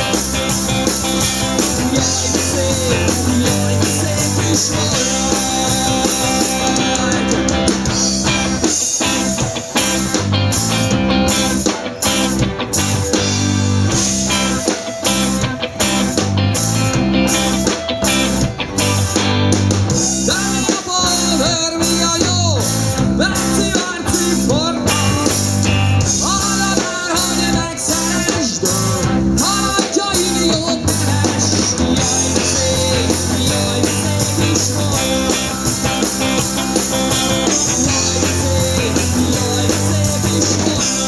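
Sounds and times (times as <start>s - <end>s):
drum kit steady beat: 0.0s - 41.0s
live rock band playing: 0.0s - 41.0s.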